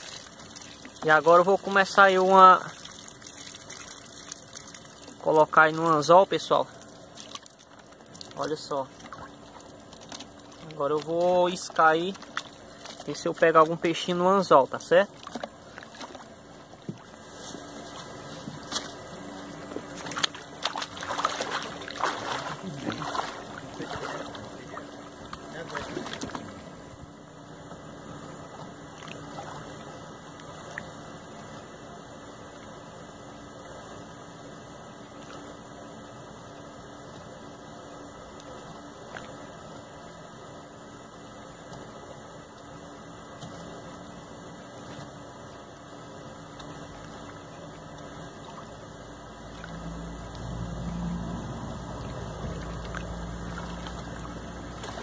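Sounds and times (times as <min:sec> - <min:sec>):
lake water lapping: 0:00.0 - 0:27.0, 0:28.1 - 0:31.7, 0:44.8 - 0:55.0.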